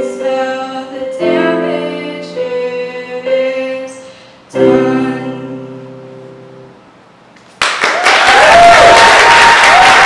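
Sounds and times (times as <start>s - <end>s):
audience applause: 7.6s - 10.0s.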